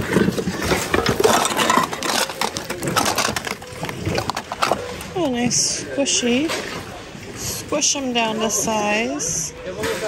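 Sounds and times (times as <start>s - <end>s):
plastic bags rustling: 0.0s - 5.3s
hard plastic items clattering: 0.0s - 7.0s.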